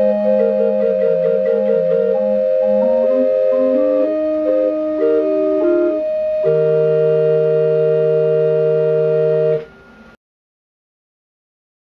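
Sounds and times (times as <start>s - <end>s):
pipe organ chord: 0.0s - 10.2s.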